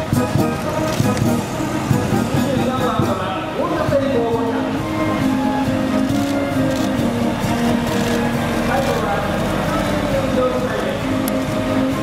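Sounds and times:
music over outdoor loudspeakers: 0:00.0 - 0:12.0
vehicles driving slowly past: 0:00.0 - 0:12.0
announcer's voice over loudspeakers: 0:02.3 - 0:05.0, 0:08.6 - 0:11.2.

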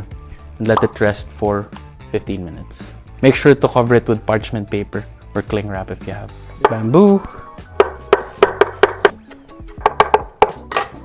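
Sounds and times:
background music: 0:00.0 - 0:11.0
knife chopping on wooden board: 0:07.8 - 0:09.1, 0:09.8 - 0:11.0.

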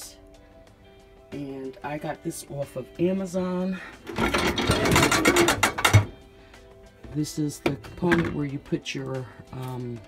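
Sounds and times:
dishwasher rack rattling: 0:04.1 - 0:06.1.

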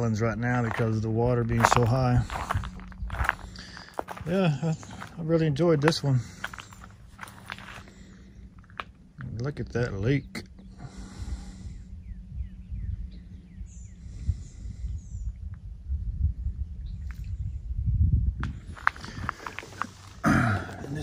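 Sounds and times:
steady low hum: 0:00.0 - 0:21.0
wind buffeting the microphone: 0:00.0 - 0:21.0
faint bird chirps: 0:10.2 - 0:15.5.

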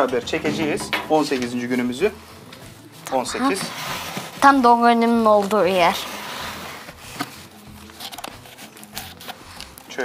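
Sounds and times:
paper rustling: 0:02.5 - 0:10.0.

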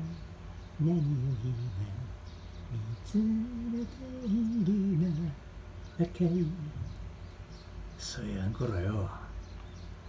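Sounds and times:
person humming a melody: 0:02.7 - 0:05.4.

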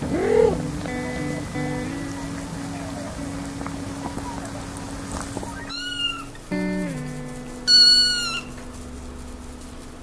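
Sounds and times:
kitten mewing: 0:00.0 - 0:01.2, 0:05.5 - 0:06.4
background music: 0:00.0 - 0:05.7, 0:06.3 - 0:08.8.

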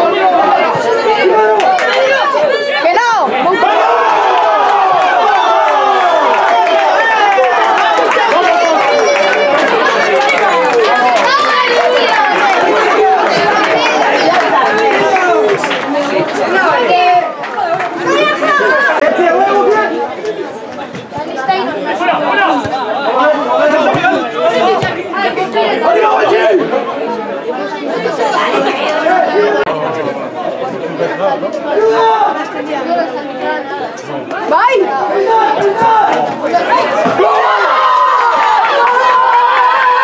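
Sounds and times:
spectators talking and calling out: 0:00.0 - 0:40.0.

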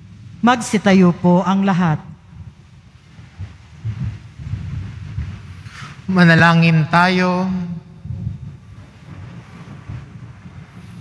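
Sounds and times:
crowd shuffling to its feet: 0:02.4 - 0:06.2, 0:08.0 - 0:11.0.

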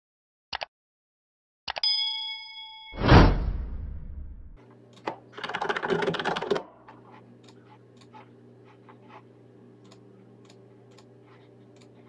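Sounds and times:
computer keyboard typing: 0:05.4 - 0:06.7
low electrical hum: 0:06.6 - 0:12.0.

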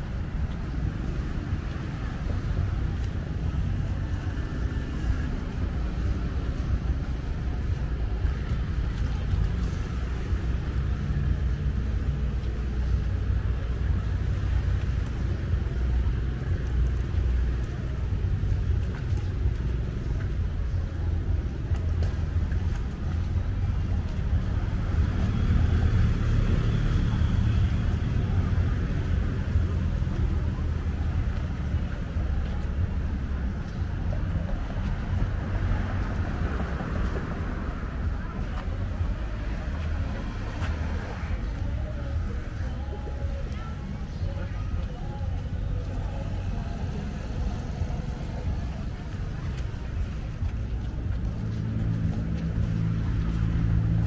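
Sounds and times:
road traffic: 0:00.0 - 0:54.0.

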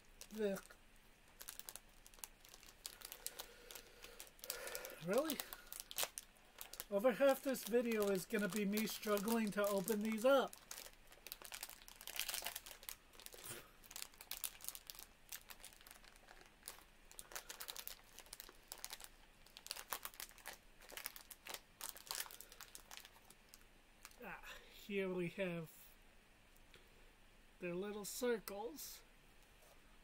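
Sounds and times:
plastic snack packet crinkling: 0:00.0 - 0:24.3.

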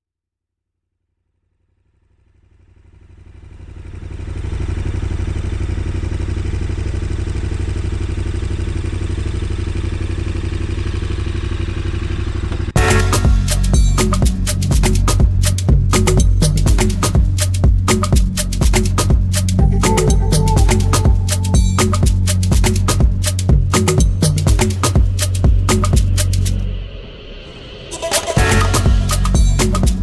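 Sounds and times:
motorcycle engine cruising: 0:02.0 - 0:26.6
music with percussion: 0:12.8 - 0:26.7, 0:27.9 - 0:30.0.

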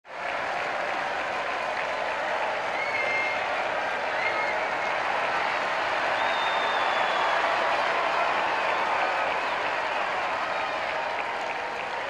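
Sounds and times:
crowd applauding: 0:00.1 - 0:12.0.

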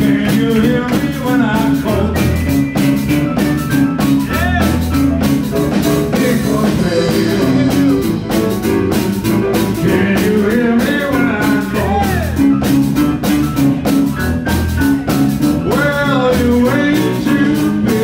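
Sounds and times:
blues band playing: 0:00.0 - 0:18.0.

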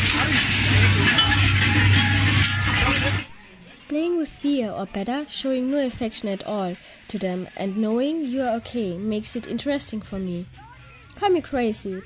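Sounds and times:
large bells clanging: 0:00.0 - 0:03.3.

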